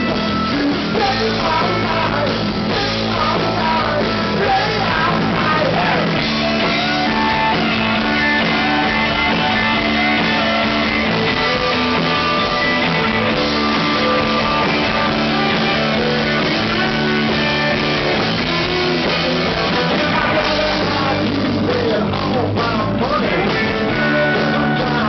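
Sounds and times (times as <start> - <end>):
rock band playing: 0.0 - 25.0.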